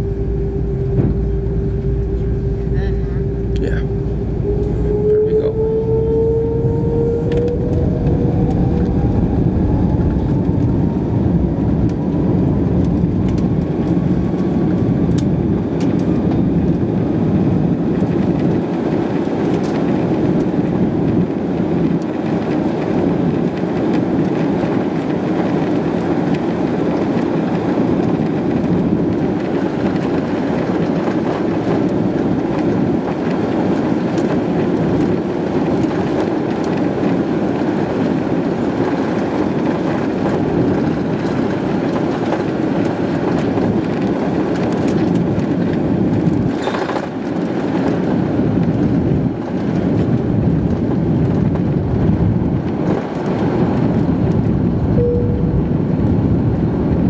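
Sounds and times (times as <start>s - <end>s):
jet engines whining and roaring: 0.0s - 57.0s.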